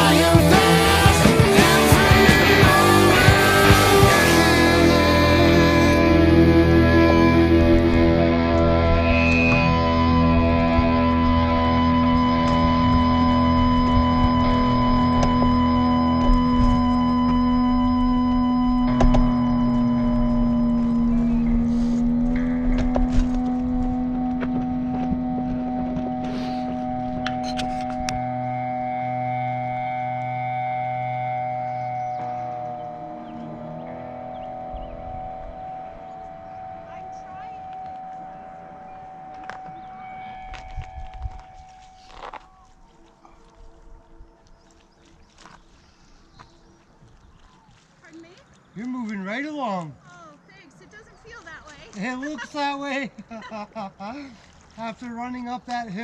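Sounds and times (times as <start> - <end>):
rock music: 0.0 - 42.1.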